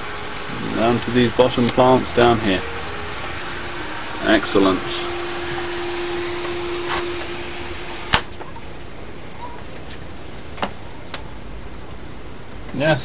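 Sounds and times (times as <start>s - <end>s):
water trickling: 0.0s - 11.1s
pump humming: 0.0s - 12.4s.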